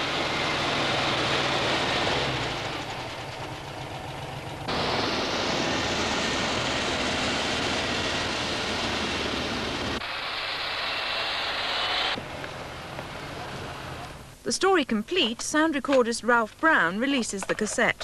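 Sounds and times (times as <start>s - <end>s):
tracked snow vehicle engine: 0.0s - 14.4s
hissy noise: 4.7s - 14.5s.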